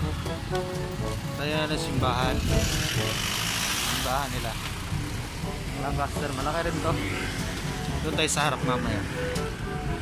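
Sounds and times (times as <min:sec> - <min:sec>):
car passing: 0:00.0 - 0:10.0
man's voice: 0:01.3 - 0:03.2.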